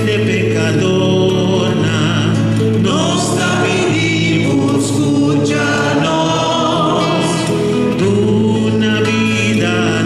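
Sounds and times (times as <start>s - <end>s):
acoustic guitar: 0.0s - 10.0s
man and woman singing hymn: 0.0s - 10.0s.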